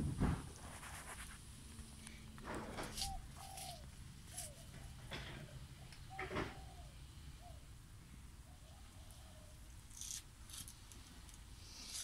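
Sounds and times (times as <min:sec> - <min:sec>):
dove cooing: 0:02.7 - 0:07.7, 0:08.4 - 0:09.6.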